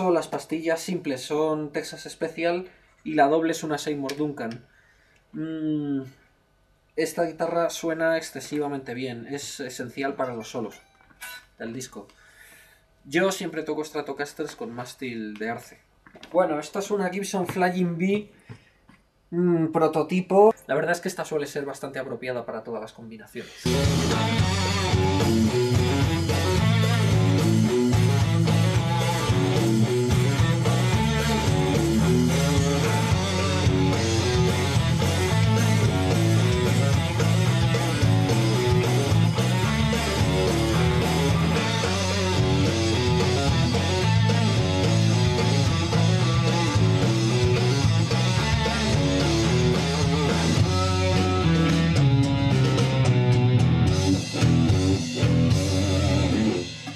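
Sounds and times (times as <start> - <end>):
electric guitar rock music: 23.6 - 56.9
repeating bass line: 23.7 - 56.8.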